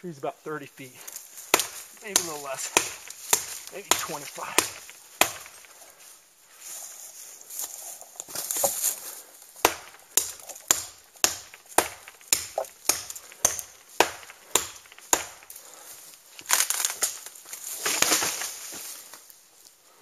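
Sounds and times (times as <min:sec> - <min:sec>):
tree trunk crackling and falling: 0:01.2 - 0:05.8, 0:07.6 - 0:19.4
knife chopping into tree trunk: 0:01.5 - 0:05.8, 0:08.3 - 0:08.9, 0:09.6 - 0:15.6, 0:16.4 - 0:18.7.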